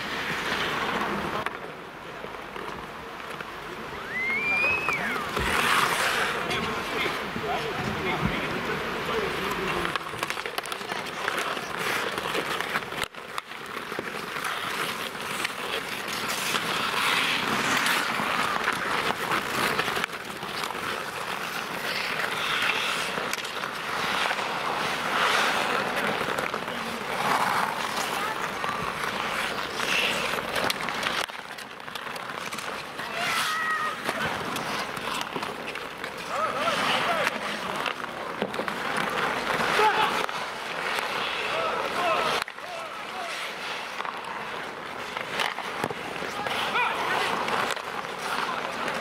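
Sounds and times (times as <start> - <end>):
hockey sticks clacking: 0.0 - 49.0
skate blades scraping ice: 0.0 - 49.0
people shouting: 33.0 - 34.1, 39.7 - 40.3, 41.4 - 43.4, 46.4 - 47.2.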